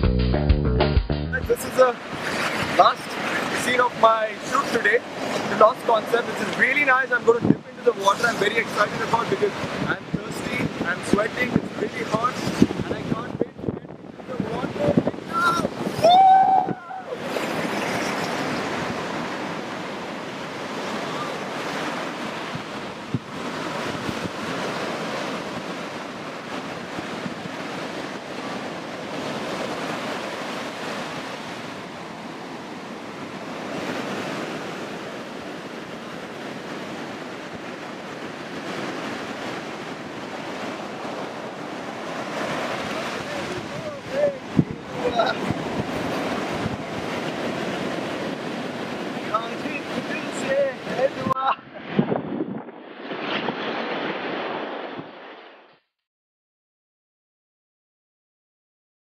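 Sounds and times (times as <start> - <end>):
wind on microphone: 1.4 - 3.7, 7.3 - 55.3
sea surf washing onto beach: 1.4 - 55.7.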